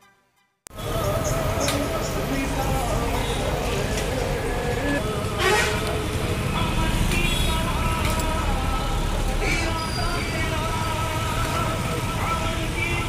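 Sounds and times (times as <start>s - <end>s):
music: 0.0s - 2.2s
traffic engine rumble: 0.7s - 13.0s
voices: 0.7s - 13.0s
car horn toot: 5.4s - 5.8s, 7.2s - 7.7s.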